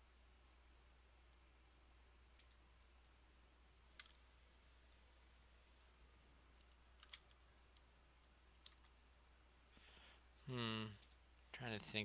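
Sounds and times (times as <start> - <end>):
faint low hum: 0.0 - 12.0
computer mouse clicks: 2.3 - 2.9, 3.9 - 4.2, 6.4 - 9.0, 10.9 - 11.3.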